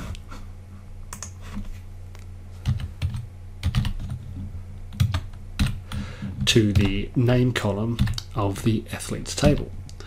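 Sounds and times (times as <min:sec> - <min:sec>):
steady low hum: 0:00.0 - 0:10.0
computer keyboard typing: 0:01.1 - 0:01.4, 0:02.6 - 0:04.3, 0:04.9 - 0:07.0, 0:08.0 - 0:08.3.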